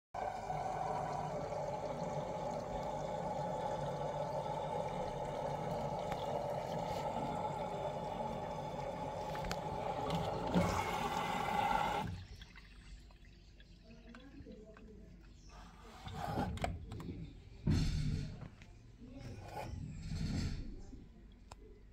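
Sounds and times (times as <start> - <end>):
water rushing into washing machine: 0.1 - 15.0.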